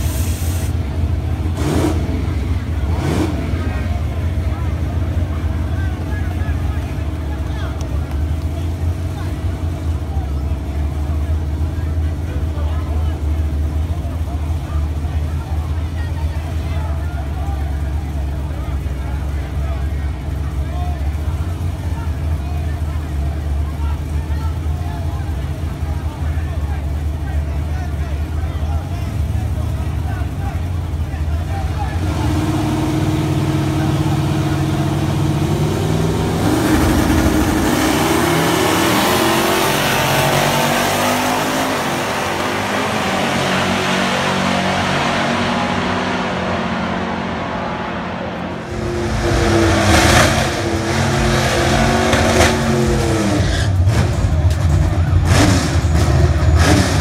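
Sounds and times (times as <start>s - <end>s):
car engine revving: 0.0s - 24.3s, 24.9s - 57.0s
crowd voices: 0.0s - 57.0s
drag cars accelerating: 0.0s - 57.0s.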